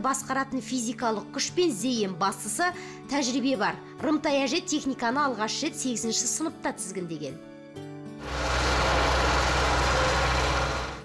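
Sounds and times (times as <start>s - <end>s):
tractor diesel engine running: 8.2s - 11.0s.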